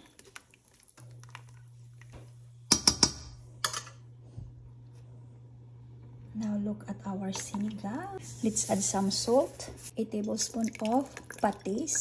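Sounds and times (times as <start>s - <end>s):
steady low hum: 1.0s - 10.0s.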